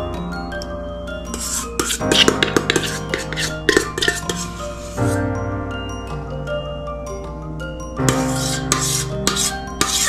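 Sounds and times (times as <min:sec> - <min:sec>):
soft mallet percussion music: 0:00.0 - 0:10.0
utensil scraping steel bowl: 0:01.3 - 0:05.2, 0:08.1 - 0:10.0.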